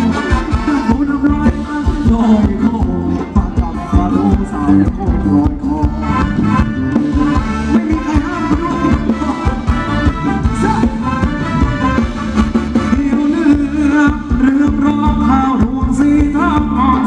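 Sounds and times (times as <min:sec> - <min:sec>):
live band dance music: 0:00.0 - 0:17.0.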